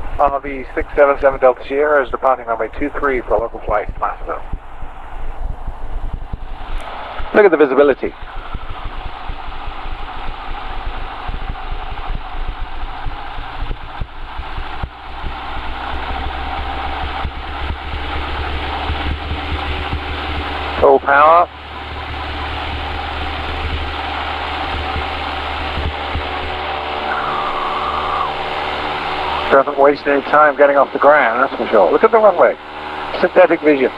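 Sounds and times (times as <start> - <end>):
airplane engine and propeller drone: 0.0 - 33.9.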